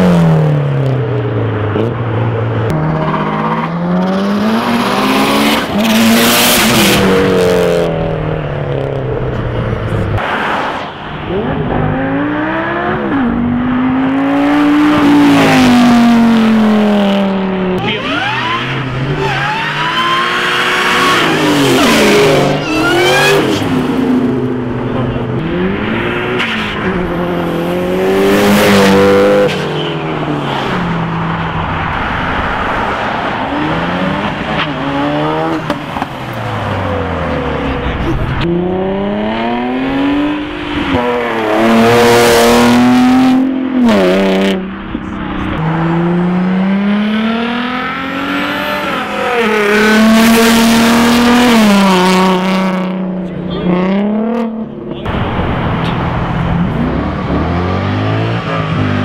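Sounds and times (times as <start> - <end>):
cars accelerating hard: 0.0 - 59.0
tires squealing: 17.8 - 24.0.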